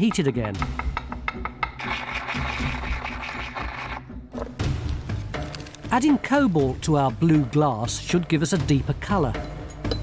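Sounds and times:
background music: 0.0s - 10.0s
glass grinding in mortar and pestle: 1.6s - 4.0s.

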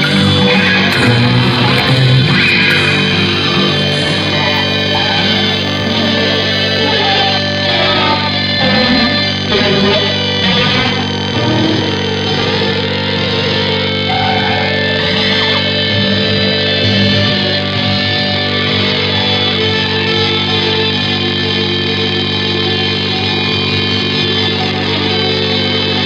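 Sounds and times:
psychedelic rock guitars: 0.0s - 26.0s.

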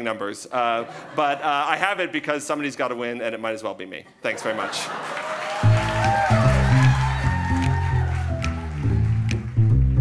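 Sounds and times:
bass line: 5.6s - 10.0s.

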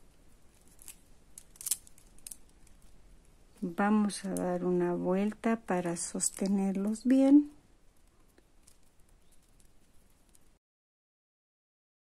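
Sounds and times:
plastic beads clicking together: 0.5s - 3.0s, 7.9s - 10.5s.

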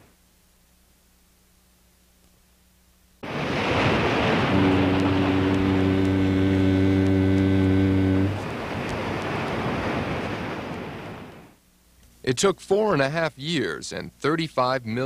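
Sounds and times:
steady rushing noise: 3.2s - 11.6s
low horn blast: 3.3s - 10.0s.

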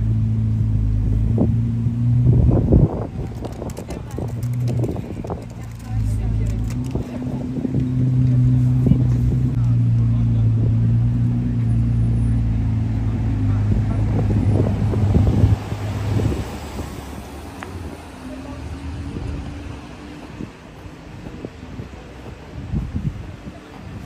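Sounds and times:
car engine idling: 0.0s - 19.4s
voices: 2.7s - 24.0s.

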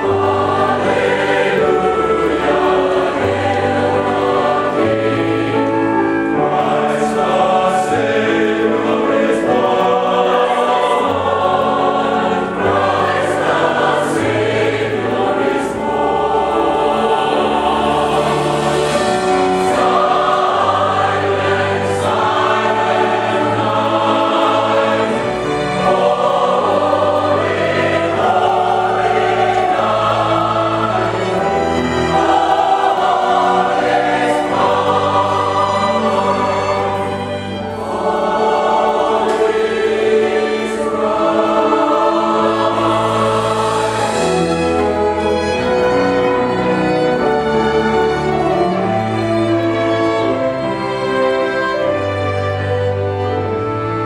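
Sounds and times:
mixed choir singing: 0.0s - 54.0s
piano: 0.0s - 54.0s
strings: 0.0s - 54.0s.

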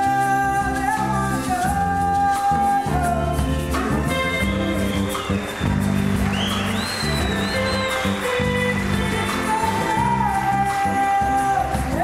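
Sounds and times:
live band with electric guitars: 0.0s - 12.0s.

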